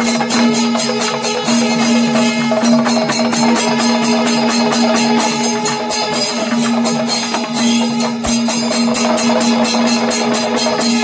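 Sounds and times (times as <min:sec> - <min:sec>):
drums beating fast rhythm: 0:00.0 - 0:11.0
hand cymbals: 0:00.0 - 0:11.0.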